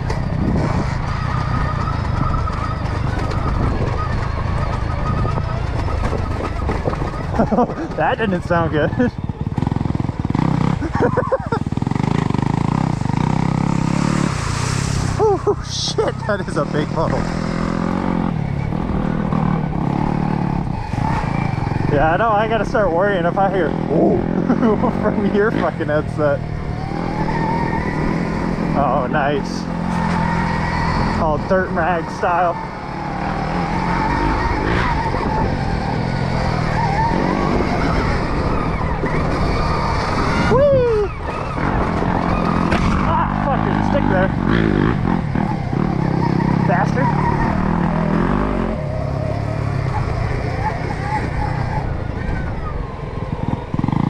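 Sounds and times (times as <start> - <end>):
low rumble of tyres on trail: 0.0 - 54.0.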